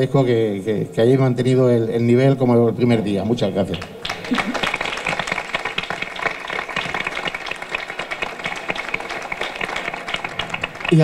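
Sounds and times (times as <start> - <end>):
audience applauding: 3.7 - 11.0.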